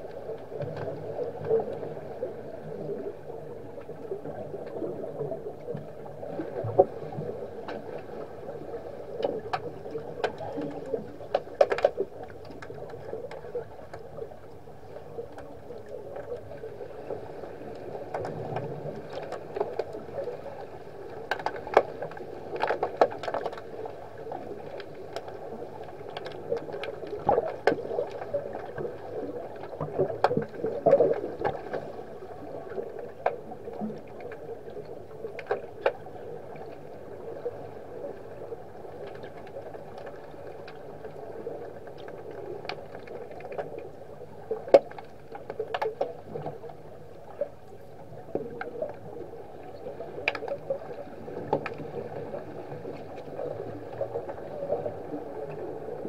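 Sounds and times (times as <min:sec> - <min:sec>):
muffled underwater churning: 0:00.0 - 0:56.0.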